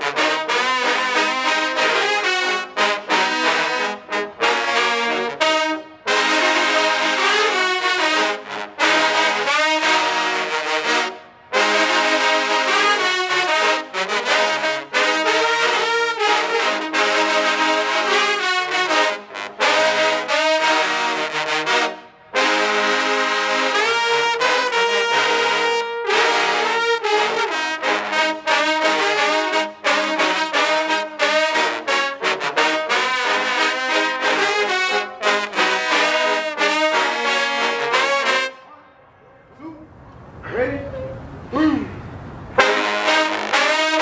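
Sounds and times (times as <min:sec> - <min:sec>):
trombone choir playing fanfare: 0:00.0 - 0:38.7, 0:42.6 - 0:44.0.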